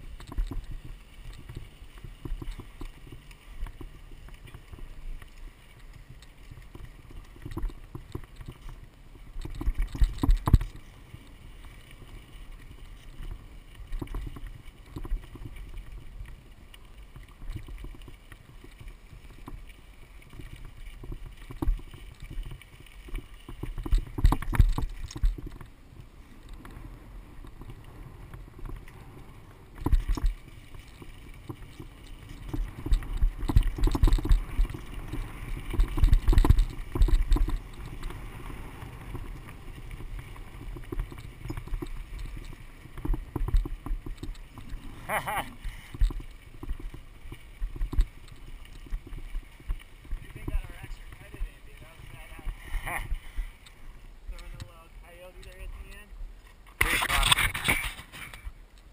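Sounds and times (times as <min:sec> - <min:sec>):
bike rattling and clattering: 0:00.0 - 0:25.8, 0:26.4 - 0:56.0
wind on microphone: 0:20.3 - 0:54.6.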